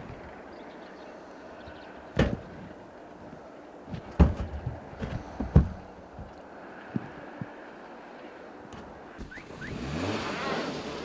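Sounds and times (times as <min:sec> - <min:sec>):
car engine revving: 0:09.2 - 0:11.0.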